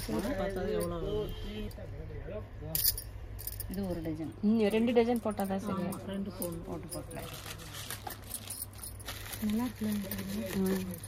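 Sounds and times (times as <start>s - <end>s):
bangles clinking and jangling: 0.0s - 1.0s, 2.7s - 11.0s.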